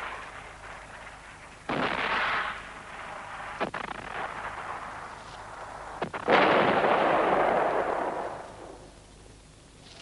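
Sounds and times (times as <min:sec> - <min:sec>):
loud blast: 0:00.0 - 0:05.2, 0:06.0 - 0:08.8
sharp crack: 0:00.0 - 0:08.9.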